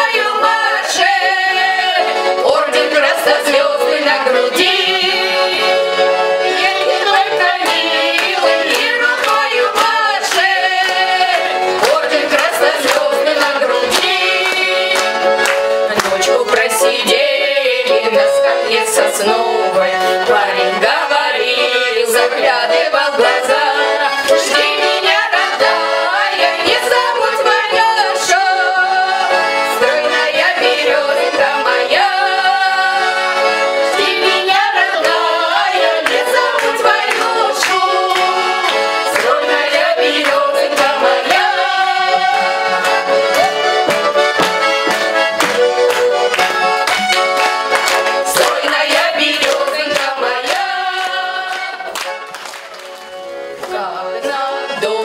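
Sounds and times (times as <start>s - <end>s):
women singing: 0.0s - 44.0s, 48.2s - 52.0s, 53.6s - 55.0s
button accordion folk music: 0.0s - 55.0s.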